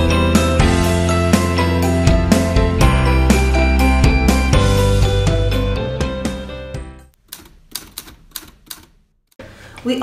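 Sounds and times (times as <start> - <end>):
background music: 0.0 - 7.2.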